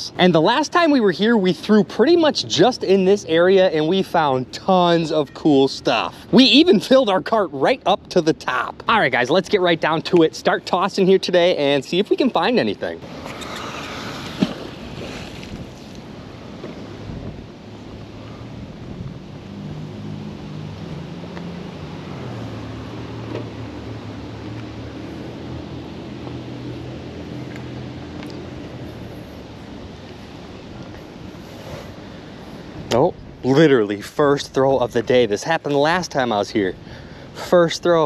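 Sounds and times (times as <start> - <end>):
distant engine hum: 12.4 - 37.6
wind on microphone: 13.0 - 20.7.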